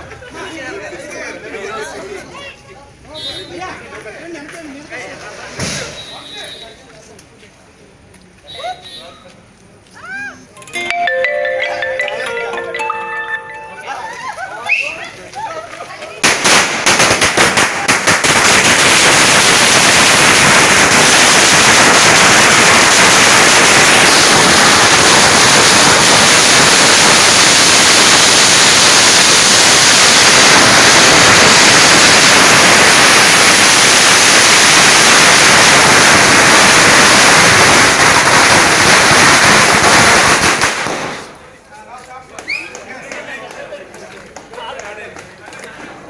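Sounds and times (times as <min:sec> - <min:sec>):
firecrackers crackling: 0:11.3 - 0:45.8.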